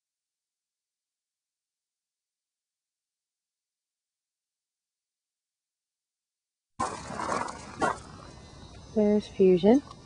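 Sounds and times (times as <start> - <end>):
outdoor rustle: 6.8 - 10.0.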